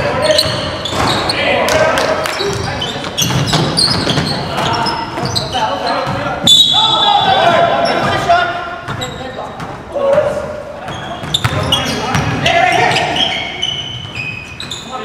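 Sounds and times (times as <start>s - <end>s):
long shrill referee whistle: 6.4s - 7.4s
players shouting: 6.4s - 8.7s, 11.6s - 13.8s.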